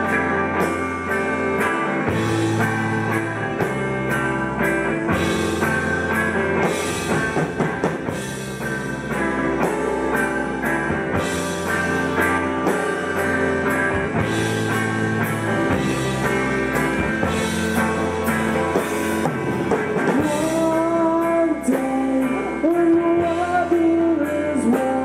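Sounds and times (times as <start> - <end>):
drum kit beat: 0.0 - 25.0
electric guitars sustained notes: 0.0 - 25.0.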